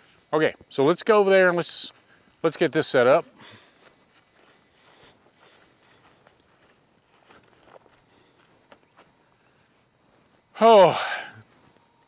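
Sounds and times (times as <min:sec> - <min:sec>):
footsteps on grass: 0:01.9 - 0:10.5.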